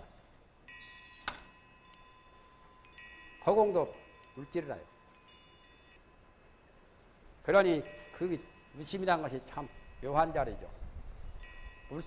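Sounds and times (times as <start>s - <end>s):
small metal chime ringing: 0.4s - 12.0s.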